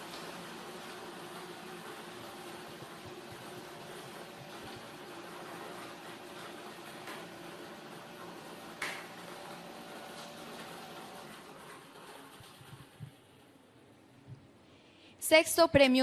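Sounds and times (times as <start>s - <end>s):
air blower running: 0.0s - 11.6s.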